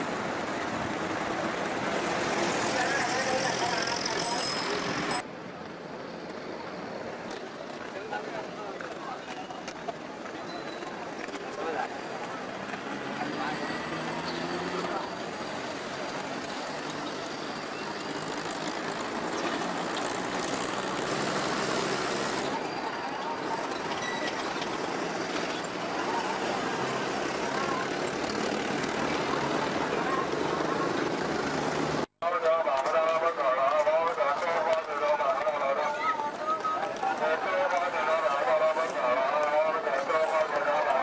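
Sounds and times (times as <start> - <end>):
passing motor traffic: 0.0 - 9.2, 11.0 - 32.1
close crowd babble: 0.0 - 41.0
hubbub of many voices: 2.0 - 6.4, 7.1 - 18.3, 22.2 - 41.0.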